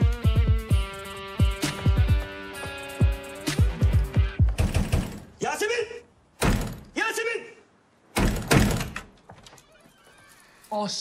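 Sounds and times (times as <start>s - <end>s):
pounding on wooden door: 4.5s - 5.3s, 6.4s - 6.9s, 8.2s - 9.2s.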